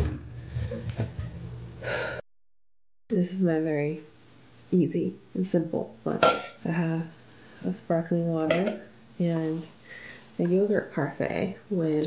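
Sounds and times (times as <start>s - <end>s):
woman breathing in: 1.8s - 2.2s, 9.8s - 10.4s.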